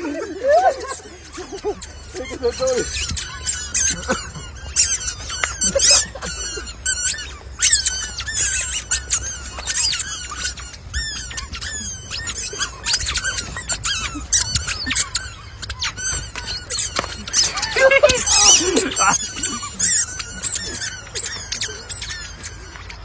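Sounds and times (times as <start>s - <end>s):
rubber squeaky toys squeaking: 0.0s - 23.0s.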